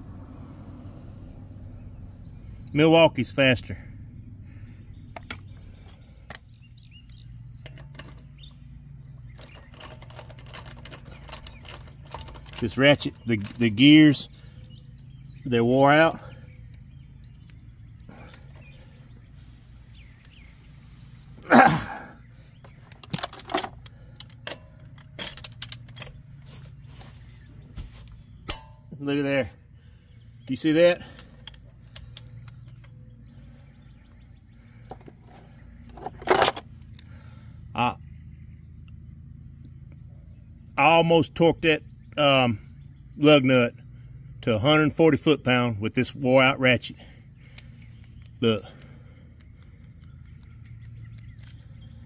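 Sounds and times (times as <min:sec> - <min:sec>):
low hum: 0:00.0 - 0:40.8
birds chirping faintly: 0:00.0 - 0:52.0.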